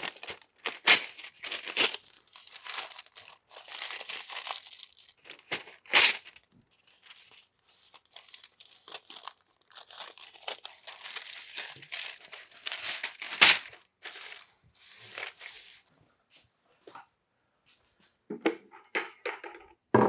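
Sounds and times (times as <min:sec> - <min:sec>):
paper tearing: 0:00.0 - 0:06.4, 0:08.1 - 0:14.4
paper crinkling and rustling: 0:00.0 - 0:15.9.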